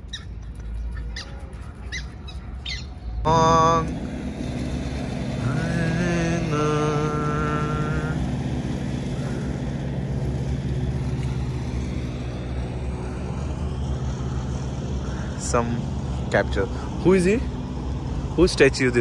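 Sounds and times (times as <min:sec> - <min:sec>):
higher pitched engine tone: 0:00.0 - 0:19.0
vehicle engine humming: 0:00.0 - 0:19.0.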